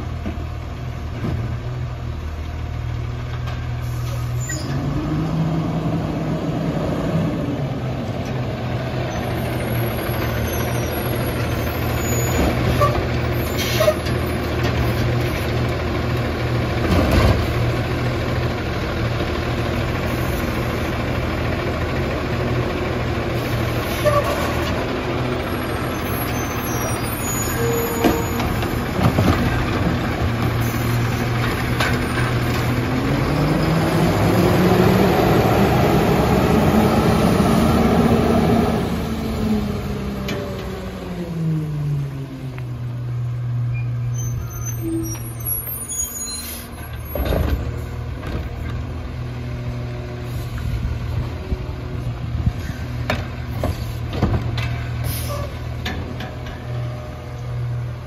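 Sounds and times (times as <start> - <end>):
diesel garbage truck engine running: 0.0 - 58.0
air brake hiss: 3.8 - 4.6, 55.0 - 55.6
knocks and clanks from cart and arm: 53.0 - 54.9.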